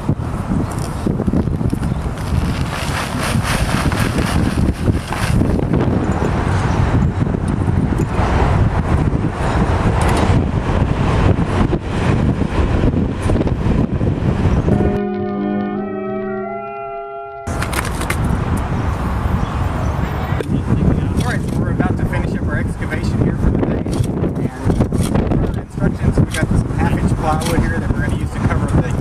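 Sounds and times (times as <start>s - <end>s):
wind buffeting microphone: 0.0s - 16.6s, 17.4s - 29.0s.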